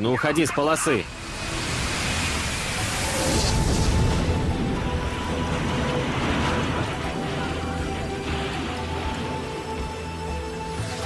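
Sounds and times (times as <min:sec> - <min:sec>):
dramatic music held tones: 0:00.0 - 0:11.0.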